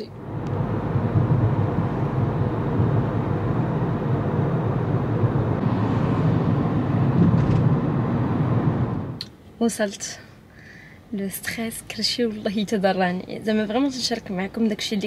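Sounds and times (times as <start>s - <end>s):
car road and engine noise: 0.0s - 15.0s.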